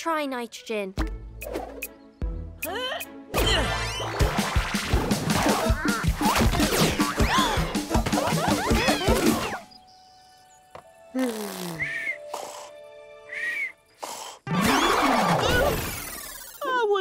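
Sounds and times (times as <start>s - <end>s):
cartoon snoring and whistle: 11.2s - 16.6s.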